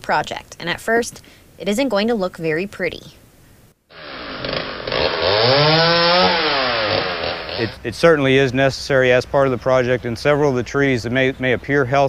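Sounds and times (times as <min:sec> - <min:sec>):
chainsaw revving: 0:03.9 - 0:07.8.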